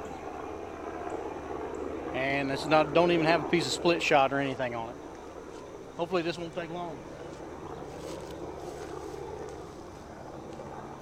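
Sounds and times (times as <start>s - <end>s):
low background drone: 0.0s - 11.0s.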